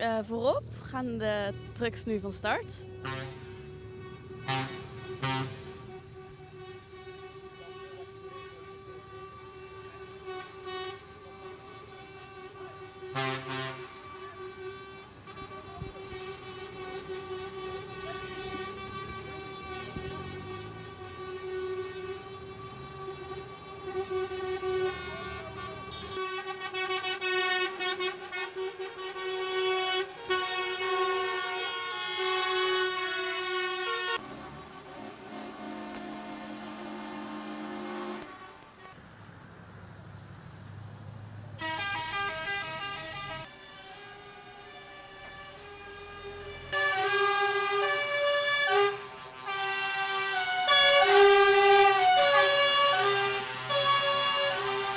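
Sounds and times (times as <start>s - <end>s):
truck engines running: 0.0s - 54.9s
truck air horns: 1.4s - 39.0s, 41.5s - 54.9s.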